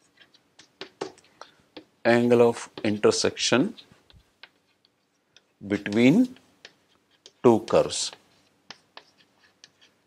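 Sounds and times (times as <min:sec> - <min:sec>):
chalk tapping and scratching: 0:00.0 - 0:10.0.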